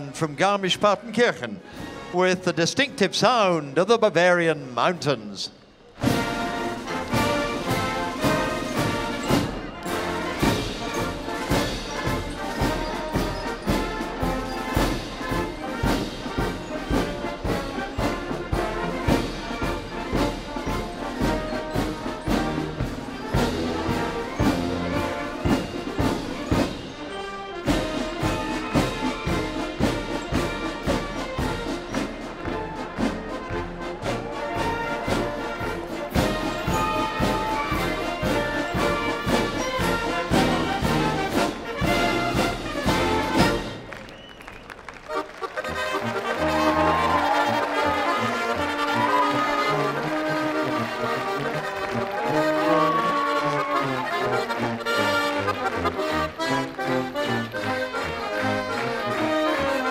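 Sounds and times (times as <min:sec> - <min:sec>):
military brass band march: 0:00.0 - 0:03.5, 0:05.8 - 0:59.9.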